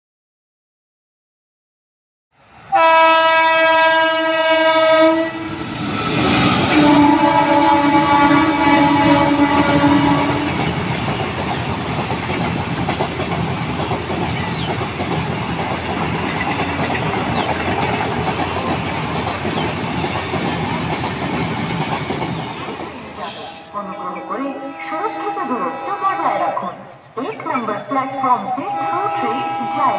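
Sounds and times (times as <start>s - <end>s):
train coaches rumbling past: 2.4s - 29.9s
train horn blasts: 2.7s - 5.6s, 6.6s - 10.6s, 23.3s - 26.6s, 28.5s - 29.9s.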